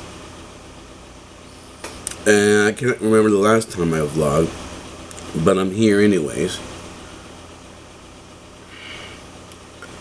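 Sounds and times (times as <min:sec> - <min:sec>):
electronics hum and hiss: 0:00.0 - 0:10.0.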